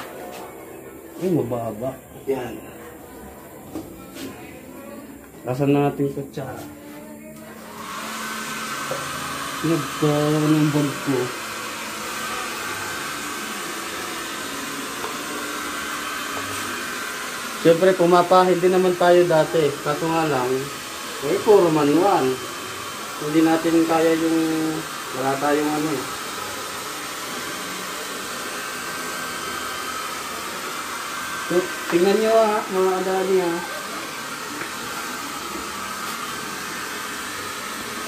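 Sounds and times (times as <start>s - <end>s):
hair dryer blowing: 7.6s - 38.0s.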